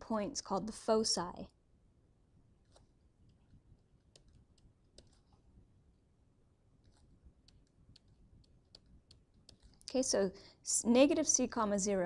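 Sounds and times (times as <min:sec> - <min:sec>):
stylus tapping on tablet screen: 0:02.6 - 0:05.4, 0:06.8 - 0:10.0.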